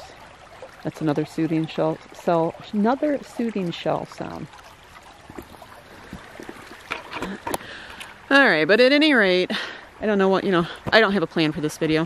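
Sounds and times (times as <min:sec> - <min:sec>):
creek babbling over stones: 0:00.0 - 0:12.0.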